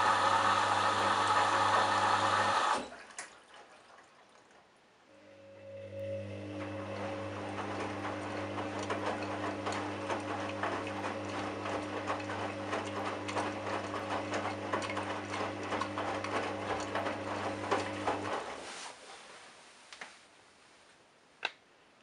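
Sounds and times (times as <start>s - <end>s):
washing machine motor humming: 0.0s - 3.0s, 5.2s - 18.7s.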